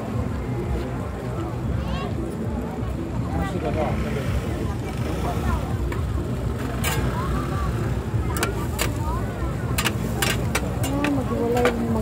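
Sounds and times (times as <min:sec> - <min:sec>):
crowd chatter: 0:00.0 - 0:12.0
metal spatulas clicking on griddle: 0:08.3 - 0:09.0, 0:09.7 - 0:12.0.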